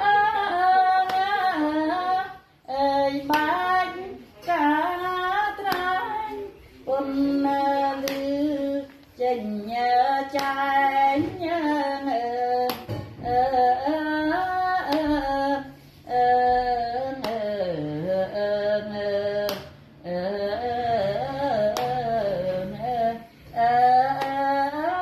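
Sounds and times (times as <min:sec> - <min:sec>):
woman singing: 0:00.0 - 0:25.0.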